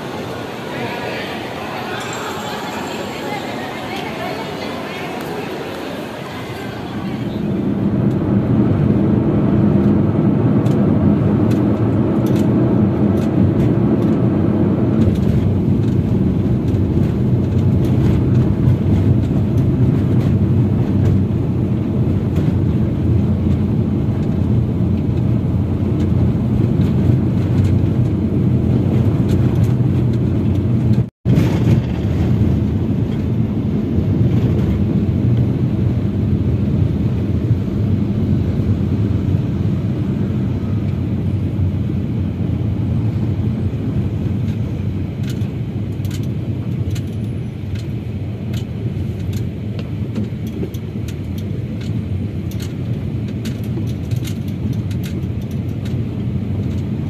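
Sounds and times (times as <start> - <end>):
car cabin road rumble: 3.9 - 57.0.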